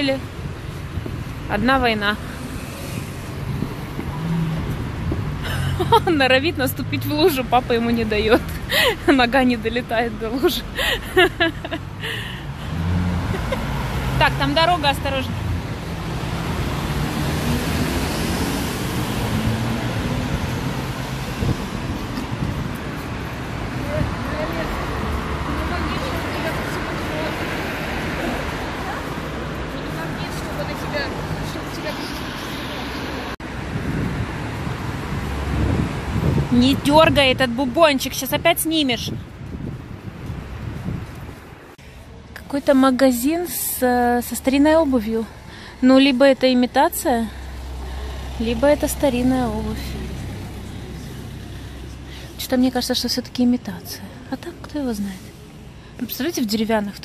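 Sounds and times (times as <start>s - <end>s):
traffic hiss on wet street: 0.0s - 57.0s.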